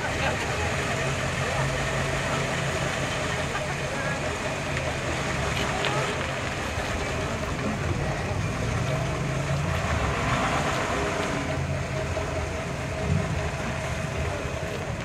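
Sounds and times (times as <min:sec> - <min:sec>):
car engine running at low revs: 0:00.0 - 0:15.0.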